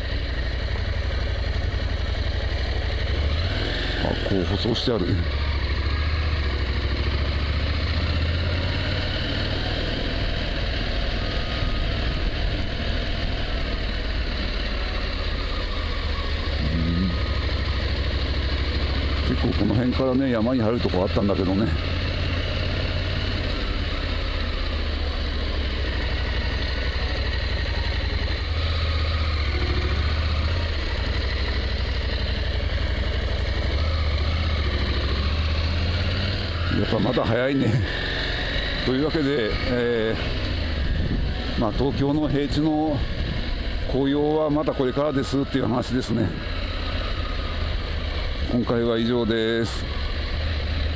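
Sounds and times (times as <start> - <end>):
motorcycle engine running low revs: 0.0 - 50.9.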